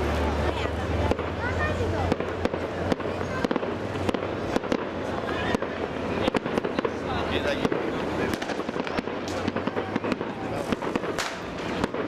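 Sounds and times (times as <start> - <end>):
fireworks bangs and cracks: 0.0 - 12.0.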